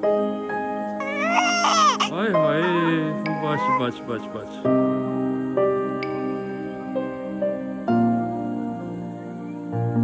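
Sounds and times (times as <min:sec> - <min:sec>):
newborn baby crying: 0:01.0 - 0:04.1.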